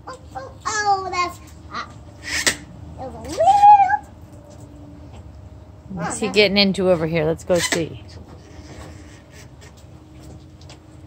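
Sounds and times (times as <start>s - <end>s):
child calling out: 0.3s - 2.0s, 3.0s - 4.1s.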